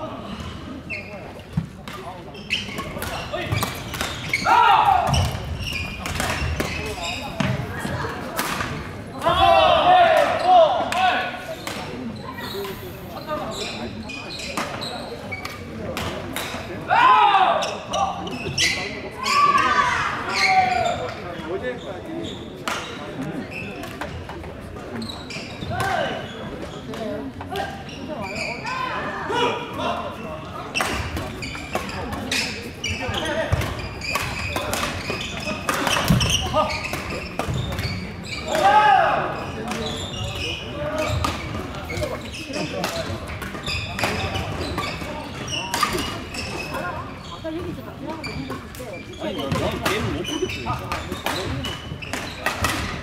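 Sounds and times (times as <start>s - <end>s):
echoing chatter of voices: 0.0s - 53.0s
rackets hitting shuttlecock: 2.7s - 4.4s, 5.1s - 7.6s, 33.5s - 38.7s, 49.4s - 53.0s.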